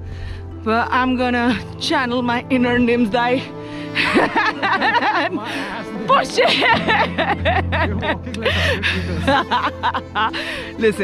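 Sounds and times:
background music: 0.0s - 11.0s
woman laughing and vocalising: 4.0s - 10.6s.

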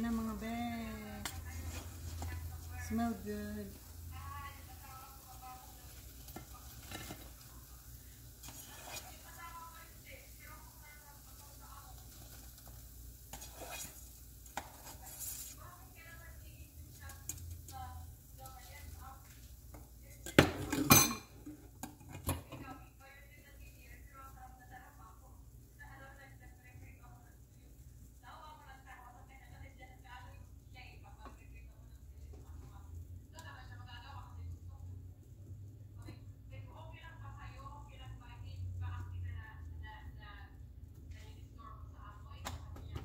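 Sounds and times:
oil sizzling: 0.0s - 22.4s.

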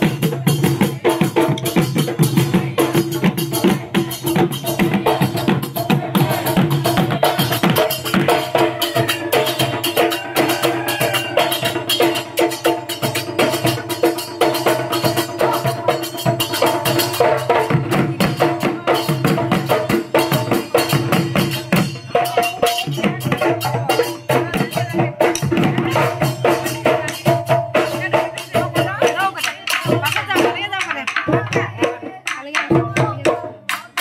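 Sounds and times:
drums beaten fast: 0.0s - 34.0s.

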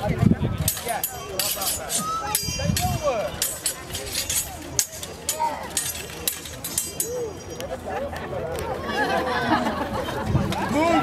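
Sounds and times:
crowd murmuring: 0.0s - 11.0s
swords clashing: 0.6s - 7.6s.

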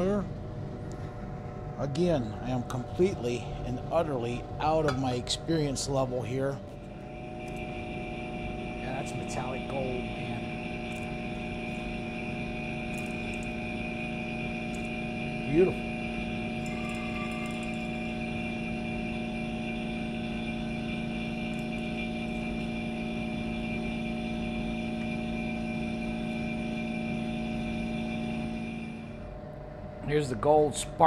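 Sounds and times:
electric pump humming: 0.0s - 29.6s.

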